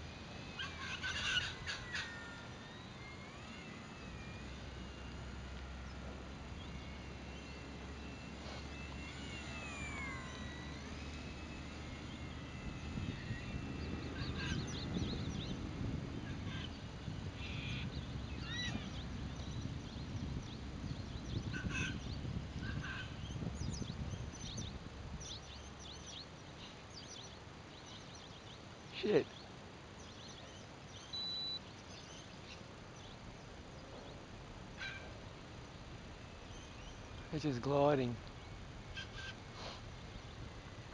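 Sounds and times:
model plane motor whining: 0.0s - 26.0s
wind rumble on microphone: 0.0s - 28.8s, 31.8s - 40.9s
birds chirping: 0.0s - 40.9s.

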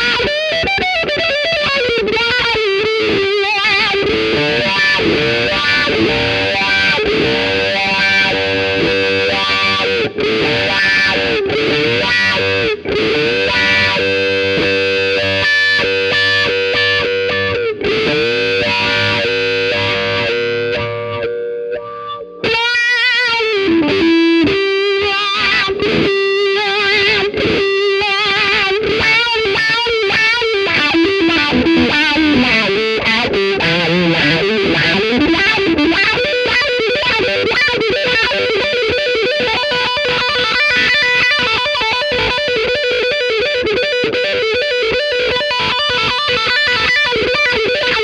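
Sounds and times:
overdriven electric guitar with wah: 0.0s - 48.0s.

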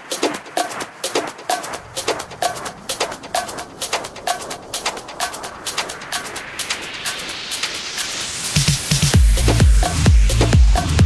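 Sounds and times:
crisp percussion hits: 0.0s - 11.0s
electronic dance music breakdown: 0.0s - 11.0s
rising noise sweep: 0.0s - 11.0s.

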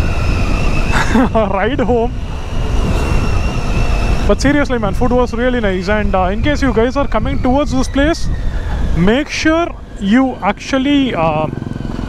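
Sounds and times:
motorcycle engine: 0.0s - 6.5s, 8.3s - 12.0s
road noise: 0.0s - 12.0s
wind rushing over microphone: 0.0s - 12.0s.

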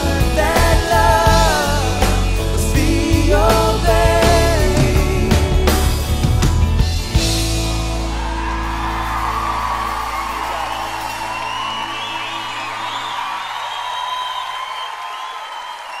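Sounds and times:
audience cheering and whooping: 7.8s - 16.0s.

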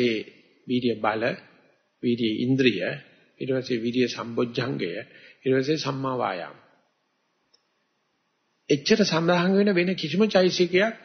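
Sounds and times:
man speaking: 0.0s - 6.7s, 8.7s - 11.0s
faint click: 7.5s - 7.8s.

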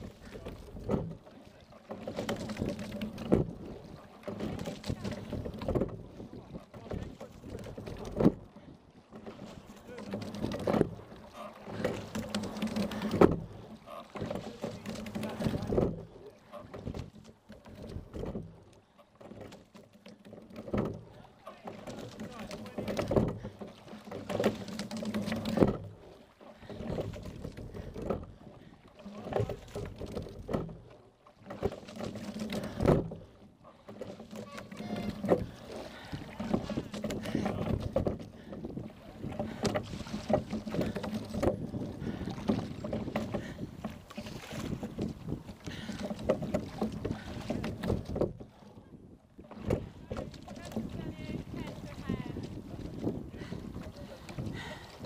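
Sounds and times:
water washing along hull: 0.0s - 55.0s.

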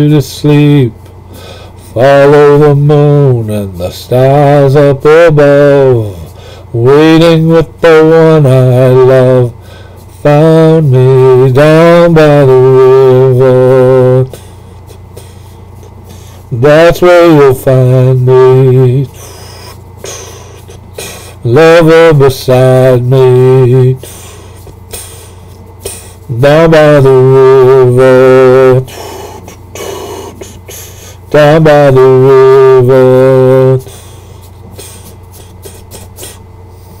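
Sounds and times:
man singing: 0.0s - 1.0s, 1.9s - 9.6s, 10.2s - 15.0s, 16.5s - 24.2s, 25.9s - 34.0s
low steady hum: 0.0s - 37.0s
man breathing in: 1.3s - 2.0s, 6.2s - 6.8s, 9.6s - 10.2s, 14.3s - 16.5s, 19.1s - 21.4s, 24.0s - 26.3s, 28.9s - 31.3s, 33.8s - 37.0s.

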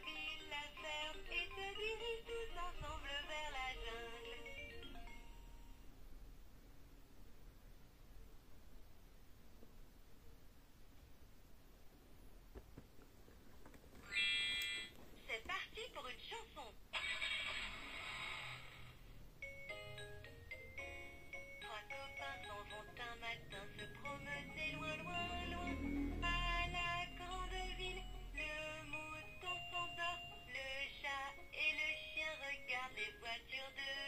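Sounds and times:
electronic music from small speaker: 0.0s - 5.8s, 19.4s - 34.0s
toy playing sung children's rhyme: 0.0s - 5.8s, 19.4s - 34.0s.

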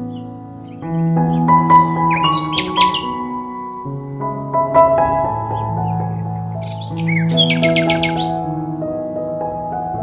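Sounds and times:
small birds chirping: 0.0s - 3.9s, 5.2s - 8.6s
soft background music: 0.0s - 10.0s.

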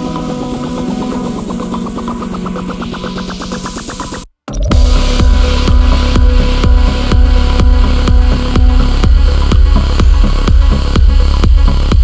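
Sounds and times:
low bass tone: 0.0s - 12.0s
rapid synth pulse: 0.0s - 12.0s.

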